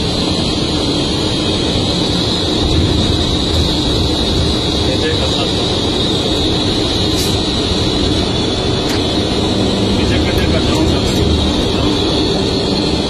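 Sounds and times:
constant high whine: 0.0 - 13.0
engine and road drone: 0.0 - 13.0.

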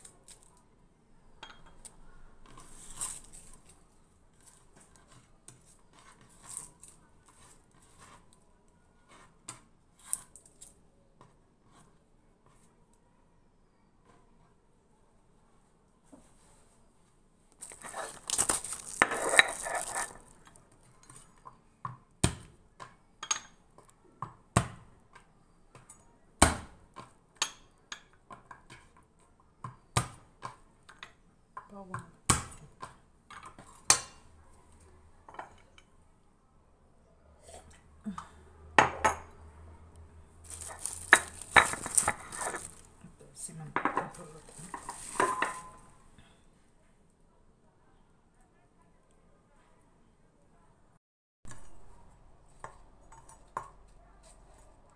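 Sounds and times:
rustling noise: 2.5 - 8.3, 16.1 - 20.5, 40.4 - 46.2
utensils and dishes clinking: 17.6 - 21.2, 40.5 - 42.9, 43.8 - 46.0.

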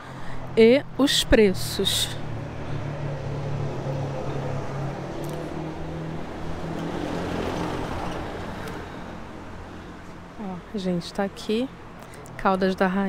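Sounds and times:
road noise: 0.0 - 13.0
vehicle engine humming: 0.0 - 13.0.

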